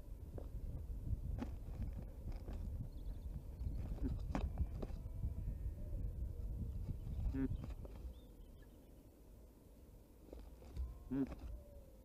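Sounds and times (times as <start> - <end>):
bird grunting: 7.2 - 7.8, 10.8 - 11.7.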